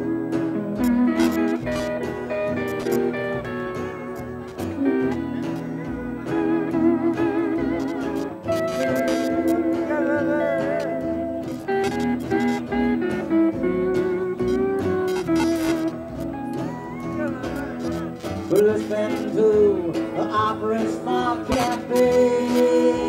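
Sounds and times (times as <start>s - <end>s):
rhythm guitar: 0.0s - 23.0s
steel guitar sliding notes: 0.0s - 23.0s.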